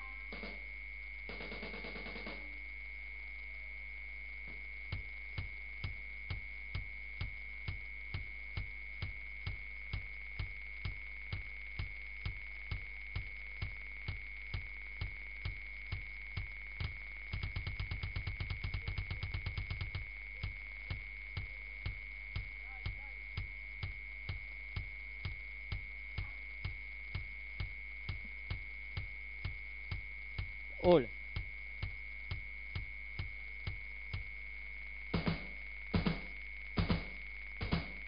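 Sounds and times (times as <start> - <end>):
constant high tone: 0.0 - 34.3
low hum: 0.0 - 38.0
fast low drum strokes: 4.9 - 34.3, 35.2 - 38.0.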